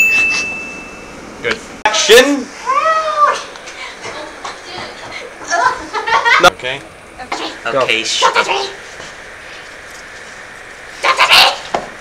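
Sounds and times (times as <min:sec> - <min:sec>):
girl crying out: 0:02.6 - 0:03.5.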